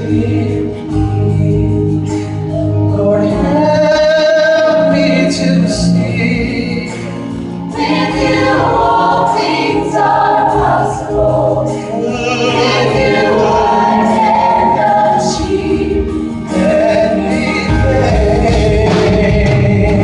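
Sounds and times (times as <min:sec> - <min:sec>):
gospel choir singing: 0:00.0 - 0:20.0
live band playing: 0:00.0 - 0:20.0.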